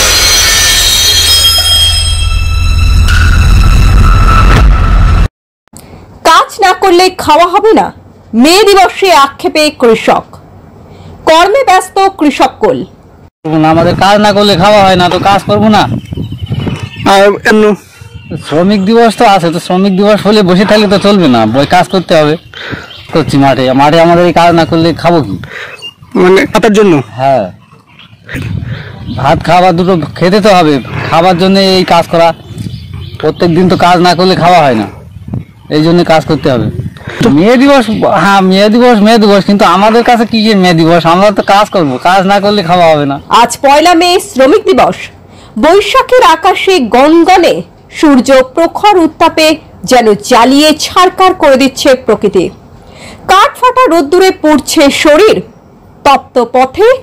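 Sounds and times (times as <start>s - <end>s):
high ringing tones: 0.0s - 5.3s
man speaking: 17.0s - 22.5s, 23.1s - 25.5s, 26.1s - 27.6s, 29.1s - 32.4s, 33.2s - 35.0s, 35.7s - 43.3s.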